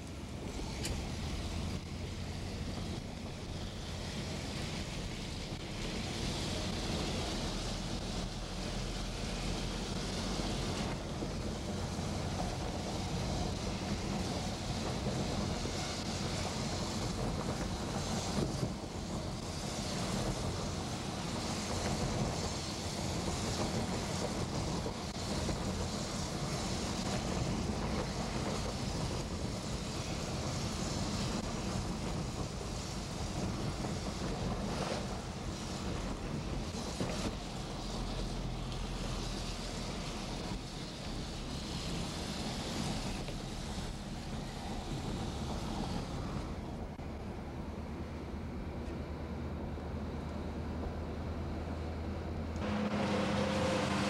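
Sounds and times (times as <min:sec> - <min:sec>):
constant hiss: 0:00.0 - 0:48.0
engine and drivetrain hum: 0:00.0 - 0:54.0
tyres on wet wooden road: 0:00.0 - 0:54.0.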